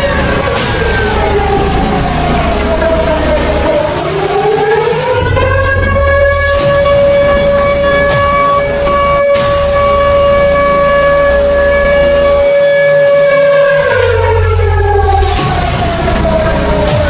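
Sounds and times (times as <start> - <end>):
low rumbling bass: 0.0 - 17.0
siren wailing: 0.0 - 17.0.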